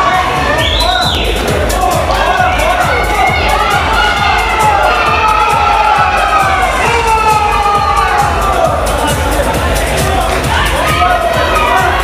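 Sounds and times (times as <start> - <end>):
background music with steady beat: 0.0 - 12.0
crowd shouting and cheering: 0.0 - 12.0
children's voices: 1.3 - 12.0.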